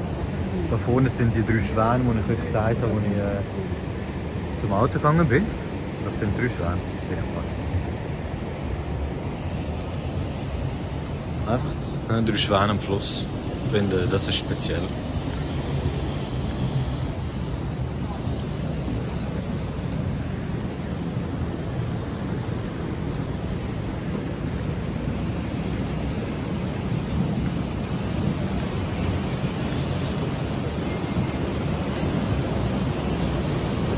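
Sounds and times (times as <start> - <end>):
fast-flowing river water: 0.0 - 33.9.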